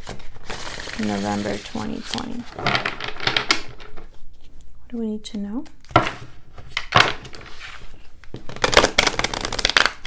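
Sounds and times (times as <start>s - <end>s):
cards riffle-shuffled: 8.3s - 10.0s.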